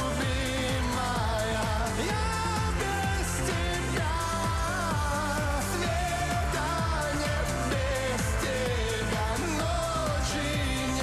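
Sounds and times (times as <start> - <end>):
drum and bass beat: 0.0 - 11.0
person singing: 0.0 - 11.0.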